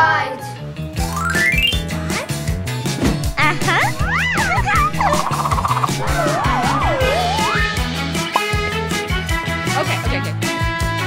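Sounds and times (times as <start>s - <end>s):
children's music with steady beat: 1.0s - 11.0s
fast warbling trill: 3.4s - 8.5s
wavy sliding tone: 3.8s - 7.9s
cartoon whistle glide: 4.0s - 7.8s.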